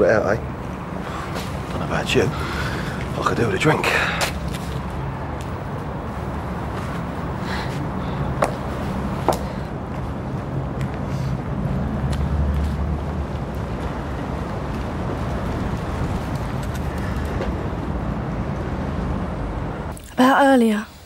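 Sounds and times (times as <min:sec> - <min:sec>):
motor vehicle rumble: 0:00.0 - 0:20.0.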